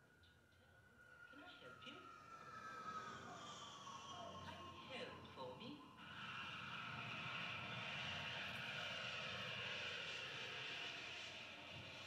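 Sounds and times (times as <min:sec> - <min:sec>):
jet engine rushing: 0:06.0 - 0:12.0.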